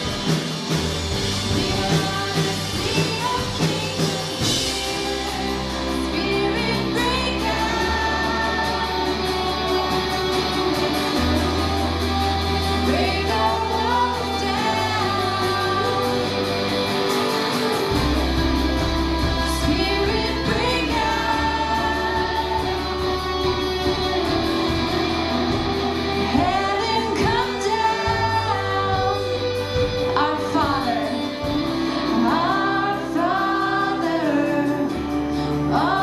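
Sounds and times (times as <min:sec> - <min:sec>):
guitars playing: 0:00.0 - 0:36.0
people singing: 0:00.0 - 0:36.0
deep held bass notes: 0:04.4 - 0:33.6.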